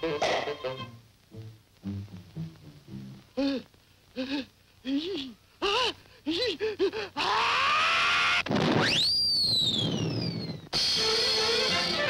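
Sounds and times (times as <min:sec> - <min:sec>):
whistle-like gliding effect: 0:08.8 - 0:10.6.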